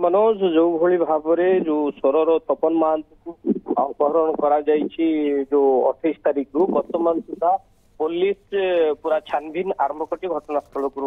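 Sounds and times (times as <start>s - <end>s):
man talking over telephone: 0.0s - 11.0s.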